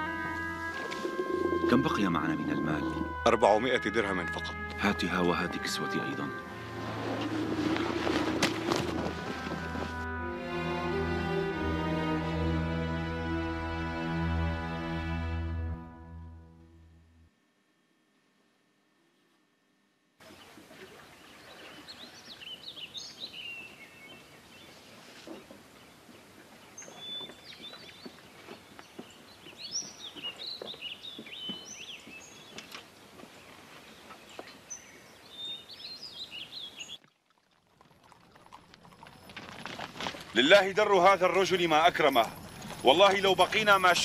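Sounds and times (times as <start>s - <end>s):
birds chirping: 0.0s - 9.9s, 20.2s - 37.0s
faint outdoor ambience: 0.0s - 14.5s, 20.2s - 44.0s
horse hoofbeats on dry ground: 5.6s - 10.2s, 25.3s - 34.6s, 38.2s - 44.0s.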